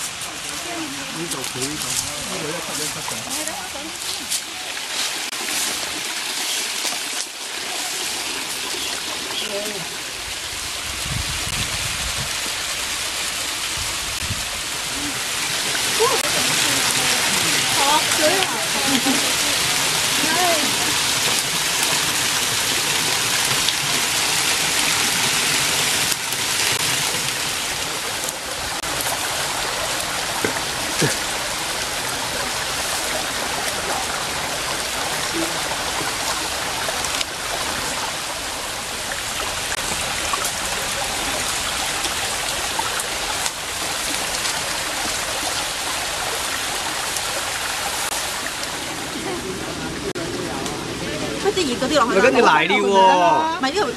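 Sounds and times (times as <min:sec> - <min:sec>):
stream splashing over boulders: 0:00.0 - 0:53.9.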